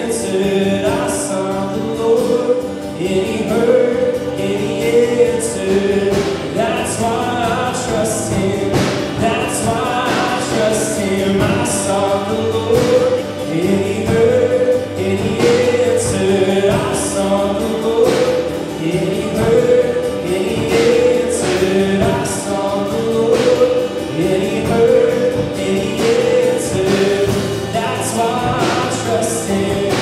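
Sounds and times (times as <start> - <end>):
person singing: 0.0 - 30.0
strummed acoustic guitar: 0.0 - 30.0.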